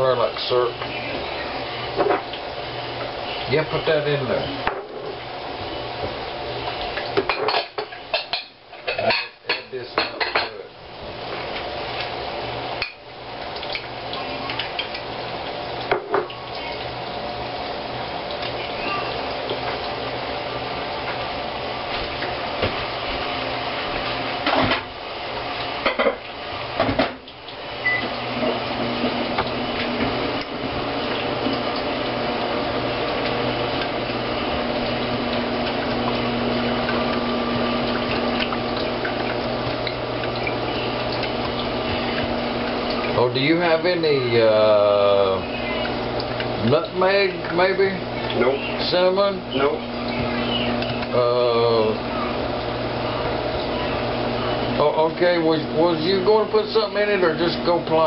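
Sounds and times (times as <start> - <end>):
kitchenware clinking and knocking: 7.2 - 10.6, 25.8 - 26.2.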